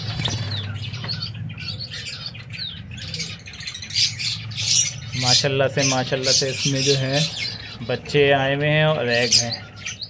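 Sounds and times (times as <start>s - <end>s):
sparrows chirping: 0.0s - 10.0s.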